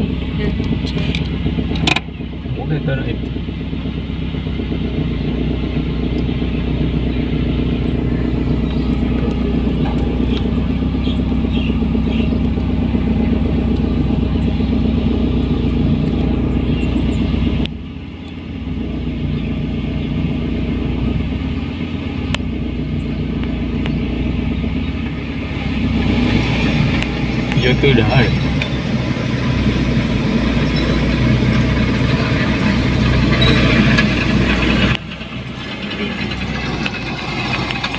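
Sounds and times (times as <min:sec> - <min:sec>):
combine harvester diesel engine drone: 0:00.0 - 0:37.9
following vehicle engine: 0:00.0 - 0:37.9.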